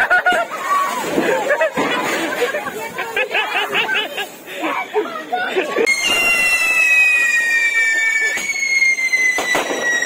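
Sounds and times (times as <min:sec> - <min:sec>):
firecracker bangs: 0:05.9 - 0:10.0
fireworks whistling: 0:05.9 - 0:10.0.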